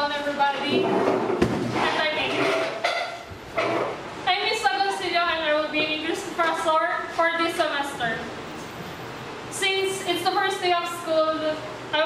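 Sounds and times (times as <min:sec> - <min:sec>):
young woman speaking: 0:00.0 - 0:01.0, 0:01.8 - 0:02.6, 0:04.2 - 0:08.4, 0:09.5 - 0:12.0.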